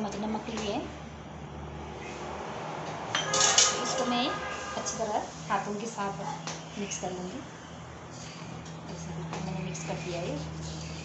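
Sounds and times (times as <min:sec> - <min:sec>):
spoon clinking on steel kitchenware: 0:03.2 - 0:04.1.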